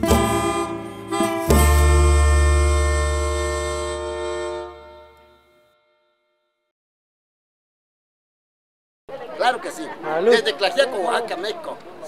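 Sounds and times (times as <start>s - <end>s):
band playing a song: 0.0s - 5.2s
deep bass note: 0.0s - 5.6s
melodica: 0.0s - 6.2s.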